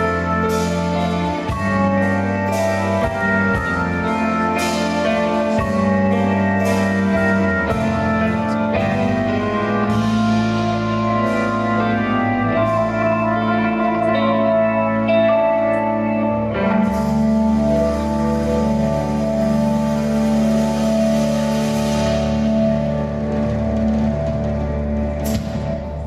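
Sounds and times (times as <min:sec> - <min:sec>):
rock band with organ chords: 0:00.0 - 0:26.0.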